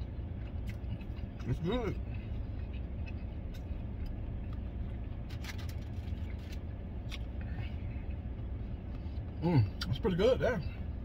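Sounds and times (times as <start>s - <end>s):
air conditioning running: 0.0s - 11.0s
vehicle idling hum: 0.0s - 11.0s.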